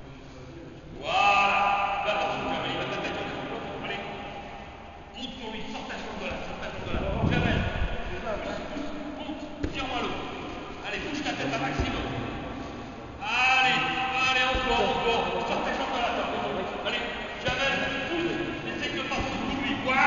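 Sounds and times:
men shouting in a hall: 1.0 - 5.1, 10.8 - 20.0.

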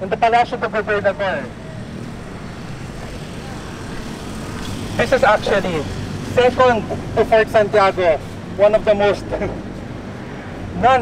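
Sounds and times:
low rumble of city traffic: 0.0 - 11.0.

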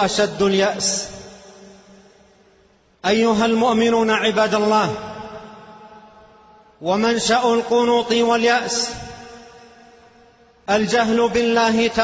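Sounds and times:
man speaking with reverb: 0.0 - 2.4, 3.0 - 12.0.

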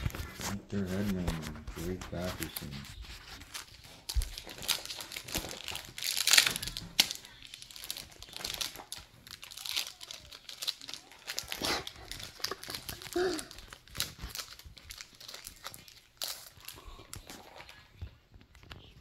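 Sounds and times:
wrapper crinkling and tearing: 0.0 - 17.9.

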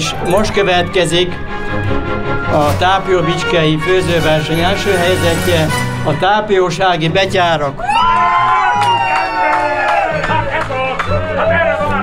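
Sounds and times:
background music with bass line: 0.0 - 12.0
long falling whoop: 7.8 - 10.2
crowd cheering and whooping: 7.8 - 12.0.

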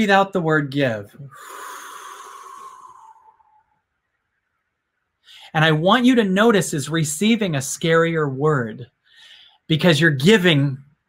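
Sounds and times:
man breathing out: 1.2 - 3.8.

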